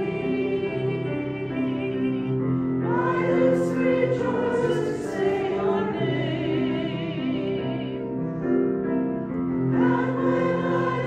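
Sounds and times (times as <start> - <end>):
voices singing a slow hymn: 0.0 - 8.0, 9.7 - 11.0.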